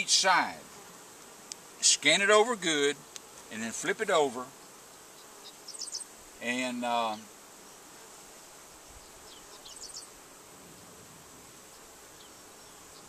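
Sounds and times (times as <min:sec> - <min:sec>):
honey bees buzzing: 0:00.0 - 0:13.0.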